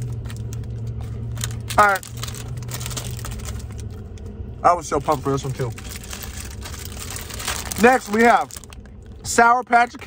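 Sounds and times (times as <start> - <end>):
plastic wrapper crinkling: 0.0 - 4.3, 5.0 - 9.3
vehicle cabin hum: 0.0 - 10.0.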